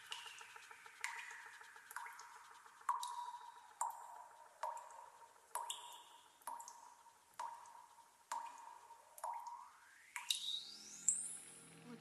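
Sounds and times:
water drop plinks: 0.0 - 5.0, 5.6 - 11.2.

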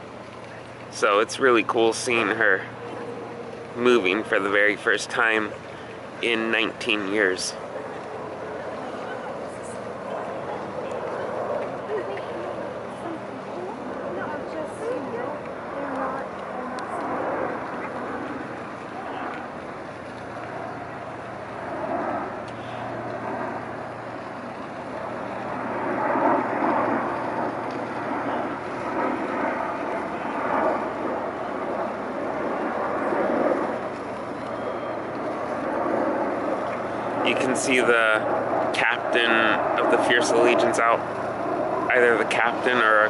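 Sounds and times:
boat diesel engines humming: 0.0 - 43.0
people talking: 0.5 - 2.6, 3.8 - 5.5, 6.2 - 7.6, 8.8 - 17.0, 37.2 - 41.0, 41.9 - 43.0.

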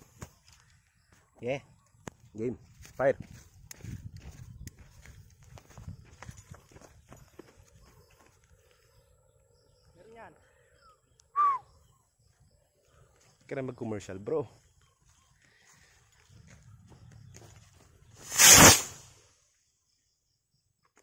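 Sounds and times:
skyrocket launching with crackles: 18.2 - 19.2.

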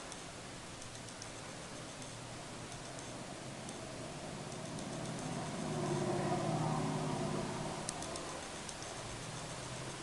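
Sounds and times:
faint high ticking: 0.0 - 10.0
motor vehicle passing by: 3.0 - 8.6.

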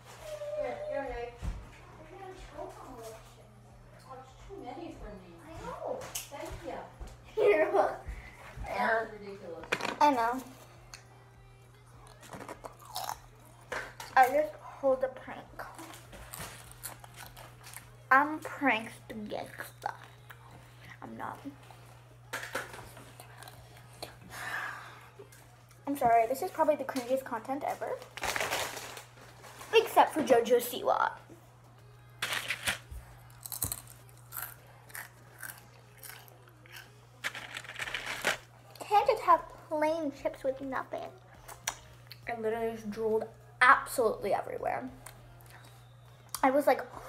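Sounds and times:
potato chips crunching: 12.1 - 13.4, 28.1 - 29.1, 32.2 - 38.5.

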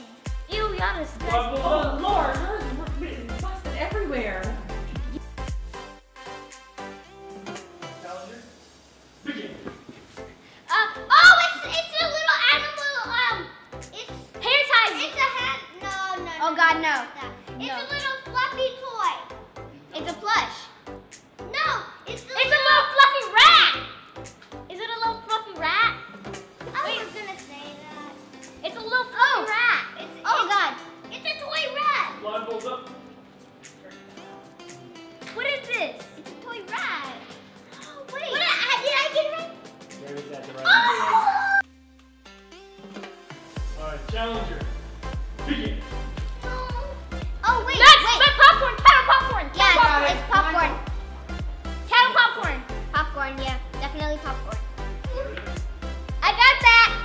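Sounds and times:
background music with beat: 0.0 - 57.0
girl shouting excitedly: 10.7 - 17.0, 17.6 - 19.2, 21.5 - 23.9, 26.8 - 32.2, 35.4 - 39.6, 40.6 - 41.7, 46.4 - 50.9, 51.9 - 55.5, 56.2 - 57.0
girls squealing excitedly: 40.6 - 41.7, 46.5 - 50.6.

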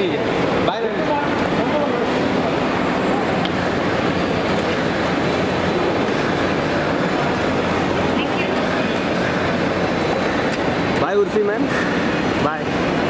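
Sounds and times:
indistinct crowd voices: 0.0 - 13.0.

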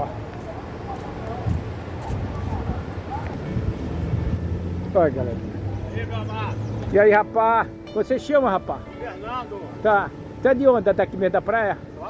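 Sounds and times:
faint voices: 0.0 - 3.9.

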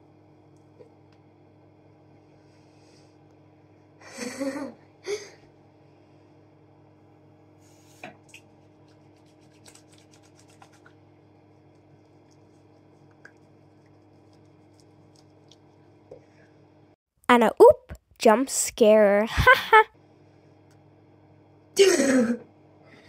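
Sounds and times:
hands rubbing together: 7.8 - 10.9
girl's voice: 17.3 - 19.9.

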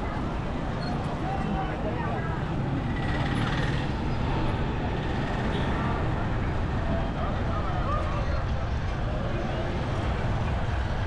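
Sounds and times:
motorcycles: 0.0 - 6.8.

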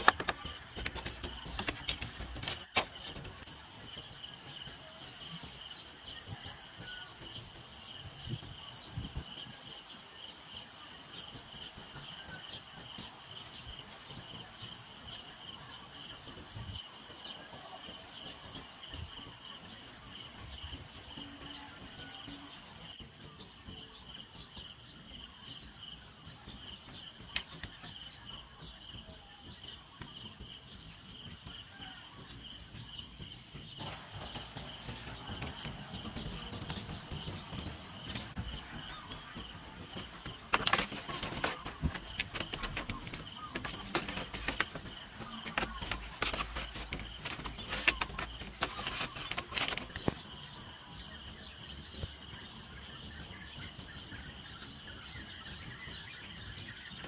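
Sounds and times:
insects chirping: 0.0 - 57.0.

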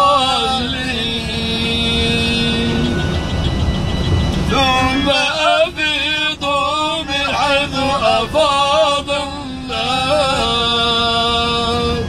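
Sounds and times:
men chanting recitation: 0.0 - 3.0, 4.4 - 12.0
bus engine and road rumble: 0.0 - 12.0
low droning tone: 0.0 - 12.0.

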